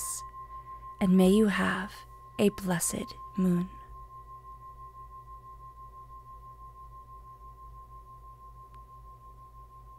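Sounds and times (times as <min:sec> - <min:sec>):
singing bowl ringing: 0:00.0 - 0:09.9.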